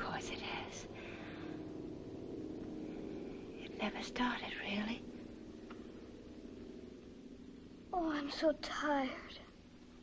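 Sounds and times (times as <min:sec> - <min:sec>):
faint hum with hiss: 0:00.0 - 0:10.0.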